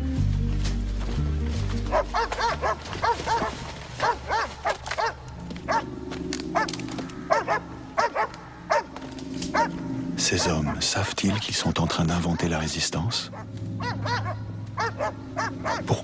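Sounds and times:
low background music: 0.0s - 16.0s
dog barking: 1.9s - 5.9s, 7.3s - 12.6s, 13.2s - 15.9s.

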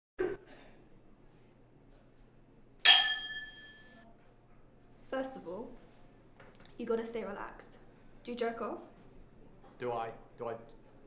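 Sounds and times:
wine glasses clinking: 2.9s - 3.9s.

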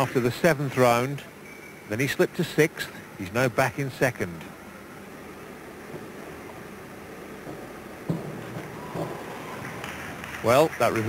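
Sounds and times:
pool hall ambience hiss: 0.0s - 11.0s
springboard dive thud: 7.4s - 10.2s.

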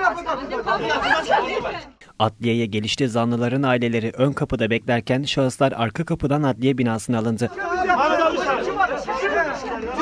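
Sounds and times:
crowd talking and shouting: 0.0s - 2.0s, 7.5s - 10.0s.

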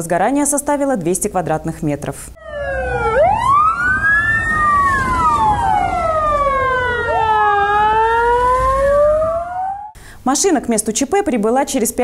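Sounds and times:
emergency sirens wailing: 2.4s - 10.0s
low engine rumble: 2.4s - 10.0s.

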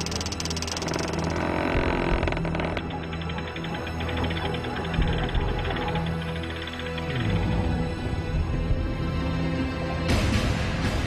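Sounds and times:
clockwork gears ticking: 0.0s - 7.9s
low drone: 0.0s - 11.0s.

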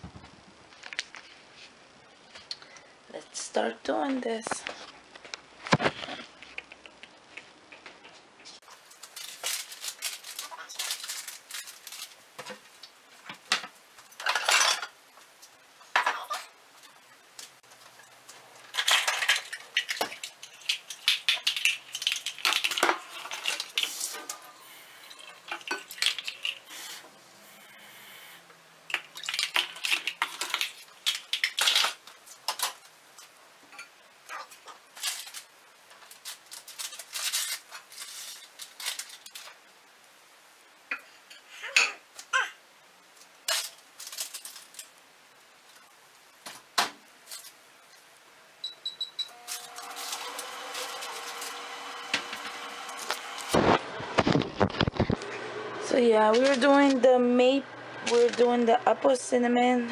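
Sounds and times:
dishes and cutlery clattering: 14.2s - 15.0s
microwave beeping: 48.6s - 53.5s
microwave humming: 48.6s - 59.0s.

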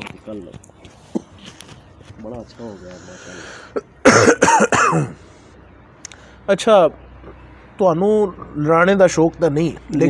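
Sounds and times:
man coughing: 3.6s - 5.2s.

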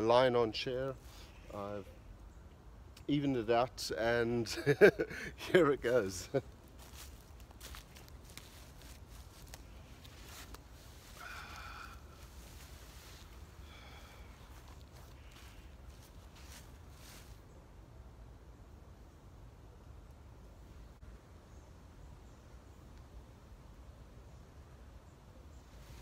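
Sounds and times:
footsteps crunching on dry leaves: 6.6s - 17.4s
canvas chair creaking: 6.8s - 17.1s.

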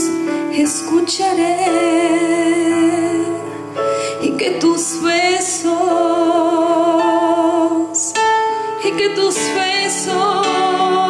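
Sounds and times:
woman singing with vibrato: 0.0s - 8.2s, 8.8s - 11.0s.

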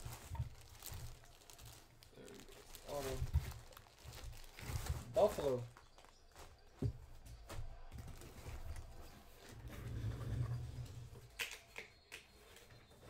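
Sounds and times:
plastic wrapping rustling: 0.0s - 9.7s.

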